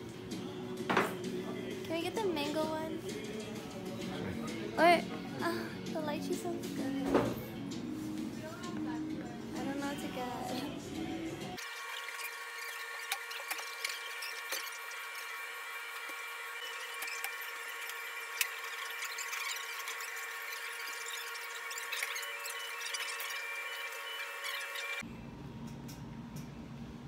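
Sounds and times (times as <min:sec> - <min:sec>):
high-pitched whine of kitchen equipment: 0:09.8 - 0:27.0.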